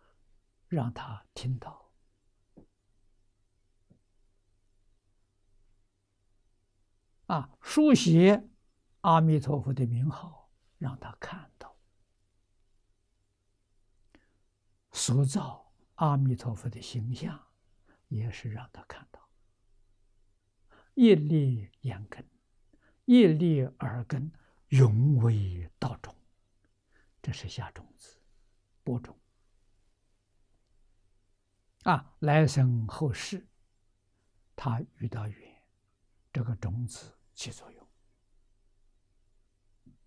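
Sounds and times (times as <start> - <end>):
elderly man talking: 0.7 - 1.9, 7.2 - 11.8, 14.9 - 19.3, 20.8 - 22.3, 23.0 - 26.2, 27.2 - 28.2, 28.8 - 29.2, 31.8 - 33.5, 34.6 - 35.6, 36.3 - 37.8
old man speaking softly: 0.7 - 2.0, 7.2 - 11.8, 14.9 - 19.4, 20.7 - 26.3, 27.2 - 29.3, 31.8 - 33.6, 34.5 - 35.7, 36.3 - 38.0.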